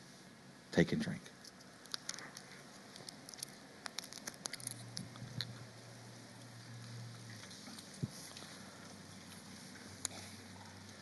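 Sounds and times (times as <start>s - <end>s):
low steady hum: 0.0s - 11.0s
light clicks of small cups: 1.4s - 5.7s.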